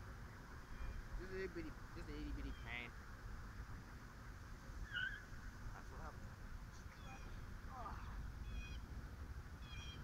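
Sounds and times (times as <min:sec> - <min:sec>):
steady low rumble: 0:00.0 - 0:10.0
high-pitched animal calls: 0:04.8 - 0:05.3, 0:06.9 - 0:08.9, 0:09.6 - 0:10.0.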